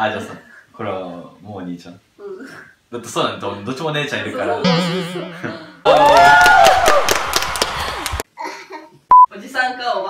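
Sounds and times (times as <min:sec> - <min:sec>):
woman cheering: 0:04.6 - 0:08.2
rapid hand clapping: 0:06.1 - 0:08.2.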